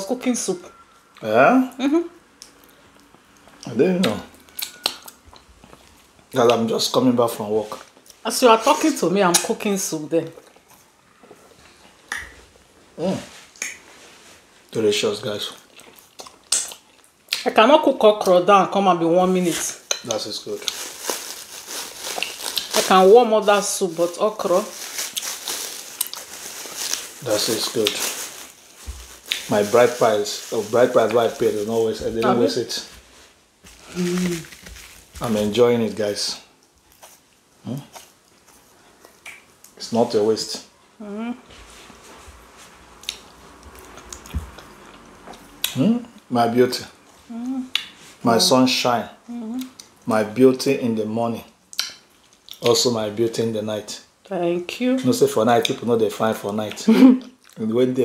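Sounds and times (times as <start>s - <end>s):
cling film crinkling: 19.4s - 32.5s, 33.8s - 35.6s
person humming mm-hmm: 33.8s - 34.5s, 41.0s - 41.5s.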